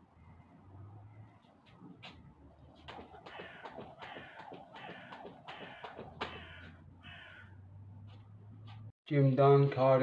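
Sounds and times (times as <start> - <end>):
skipping rope ticking on paving: 2.0 - 6.8
bird cawing: 2.7 - 7.9.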